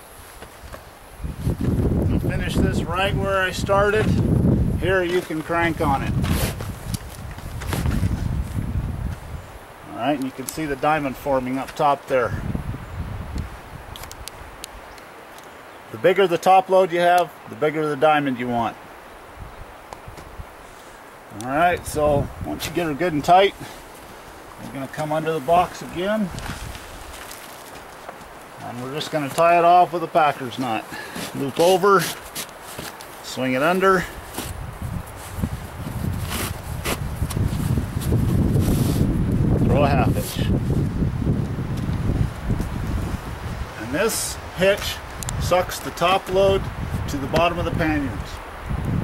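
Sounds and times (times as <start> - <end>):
wind buffeting microphone: 0.0 - 9.8, 12.2 - 14.9, 19.2 - 20.7, 21.6 - 27.3, 33.9 - 49.0
faint steady hiss: 0.0 - 49.0
rope rustling through hands: 4.9 - 9.3, 22.5 - 39.4.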